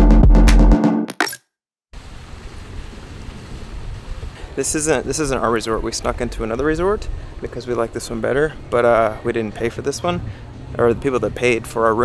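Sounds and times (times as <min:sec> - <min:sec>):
wind buffeting microphone: 0:03.0 - 0:11.8.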